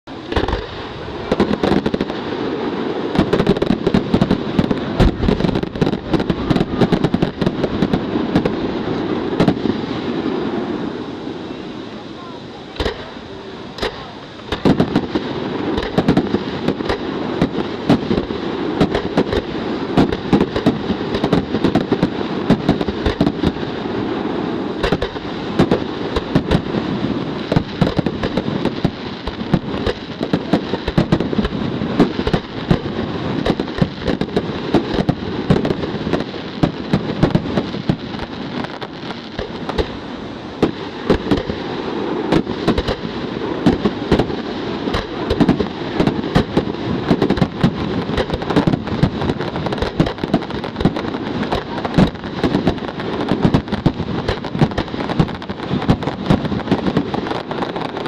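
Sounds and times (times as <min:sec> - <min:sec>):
fireworks barrage rumble and crackle: 0:00.0 - 0:58.0
firework shells bursting: 0:00.2 - 0:11.0, 0:12.8 - 0:58.0.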